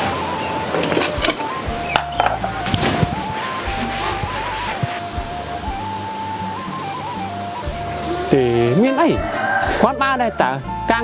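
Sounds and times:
background music melody: 0:00.0 - 0:11.0.

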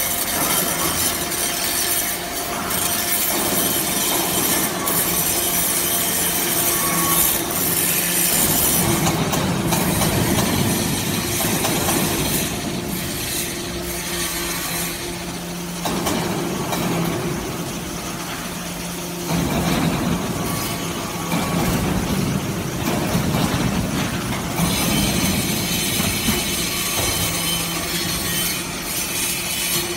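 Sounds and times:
hydraulic press hum: 0:00.0 - 0:29.9
metal chips rattling on conveyor: 0:00.0 - 0:29.9.

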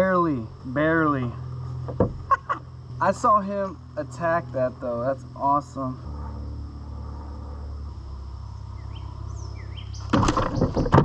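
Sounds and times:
creek low rumble: 0:00.0 - 0:11.0
faint insect drone: 0:00.0 - 0:11.0
bird chirp: 0:06.0 - 0:11.0.

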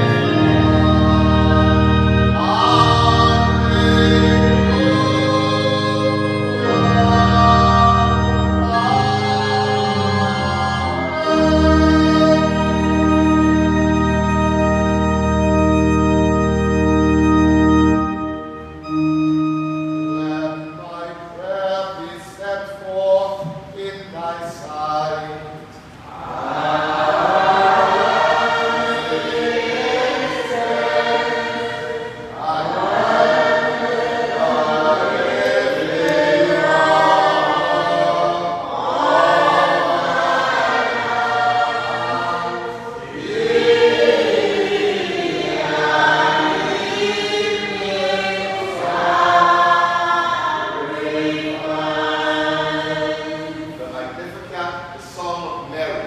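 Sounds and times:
church choir chanting: 0:00.0 - 0:25.3, 0:26.1 - 0:54.6.

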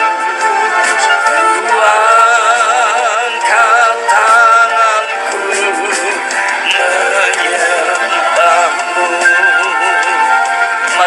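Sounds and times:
man singing into a microphone: 0:00.8 - 0:11.0.

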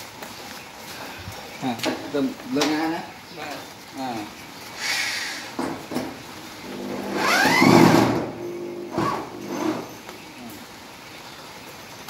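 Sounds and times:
electric drill whining: 0:06.7 - 0:08.2.

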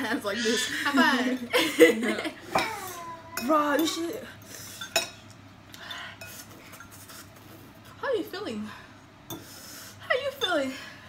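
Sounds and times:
forks clinking in ceramic bowls: 0:02.6 - 0:05.3, 0:10.3 - 0:10.7.

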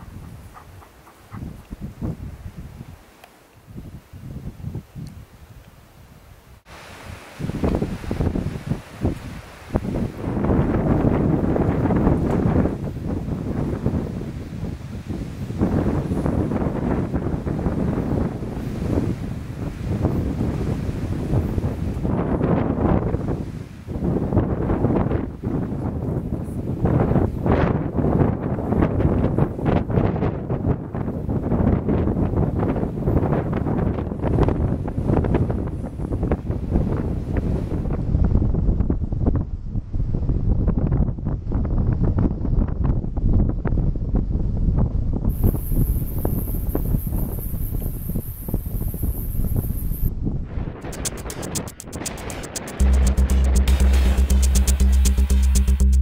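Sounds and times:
wind buffeting microphone: 0:00.0 - 0:05.7, 0:06.5 - 0:52.8.

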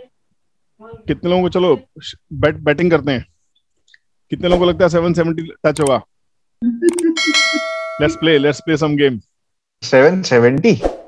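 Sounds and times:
person speaking: 0:00.8 - 0:03.3, 0:04.3 - 0:09.2
notification bell ding: 0:06.6 - 0:08.8.

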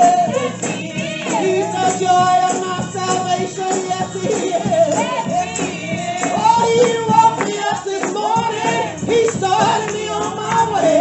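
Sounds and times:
tambourines shaken and struck: 0:00.0 - 0:11.0
woman singing gospel song: 0:00.0 - 0:11.0.

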